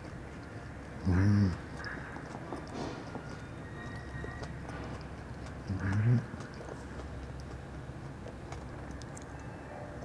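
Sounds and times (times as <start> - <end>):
man humming while chewing: 1.0 - 1.9, 5.5 - 6.5.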